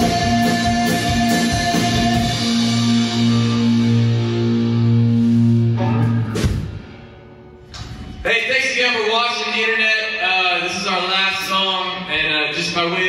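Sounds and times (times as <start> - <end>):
live rock band: 0.0 - 8.1
man talking: 8.2 - 13.0.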